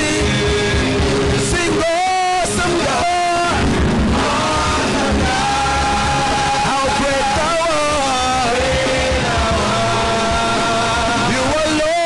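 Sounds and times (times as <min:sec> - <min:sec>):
band with steady beat: 0:00.0 - 0:12.0
singer holding long notes: 0:00.0 - 0:12.0.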